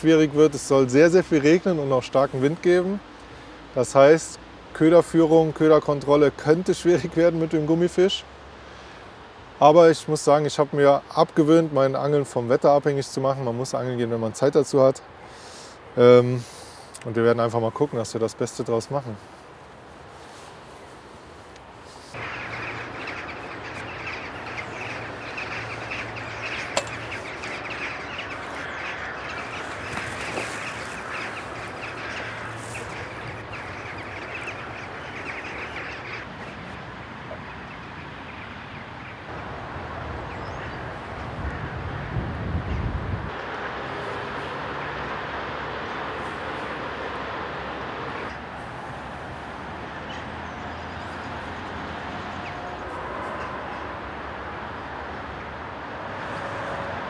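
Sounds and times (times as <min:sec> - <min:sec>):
many birds calling: 0:00.0 - 0:56.8
steady low hum: 0:20.6 - 0:37.8.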